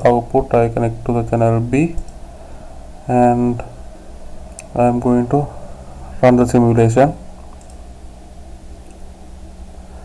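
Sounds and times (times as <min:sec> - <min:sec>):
low background hiss and hum: 0:00.0 - 0:10.0
computer mouse click: 0:07.5 - 0:07.8.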